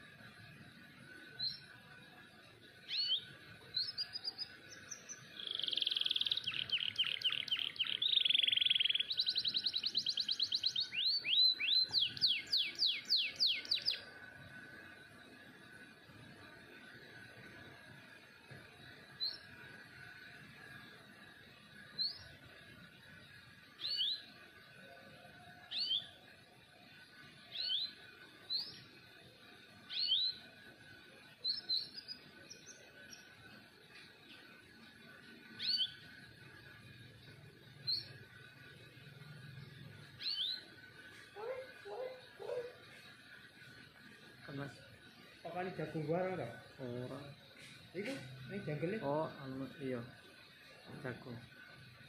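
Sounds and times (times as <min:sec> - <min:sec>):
canary chirping: 0:03.8 - 0:14.1, 0:35.6 - 0:36.0, 0:39.4 - 0:40.7, 0:41.4 - 0:42.8.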